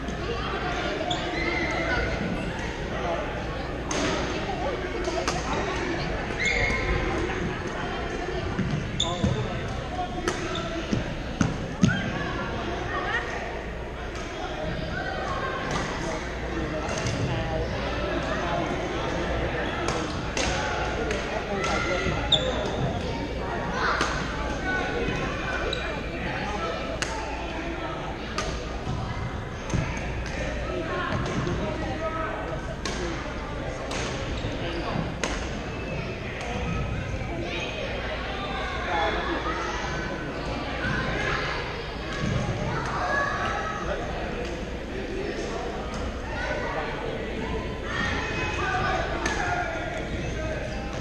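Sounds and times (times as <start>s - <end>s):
many overlapping distant voices: 0.0s - 51.0s
knocks and squeaks of play: 0.1s - 7.8s, 8.5s - 13.4s, 14.0s - 27.6s, 32.9s - 46.2s.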